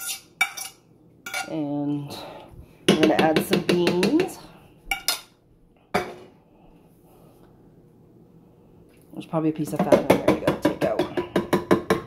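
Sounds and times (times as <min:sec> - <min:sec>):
kitchenware clinking: 0:00.0 - 0:01.6, 0:02.9 - 0:05.4.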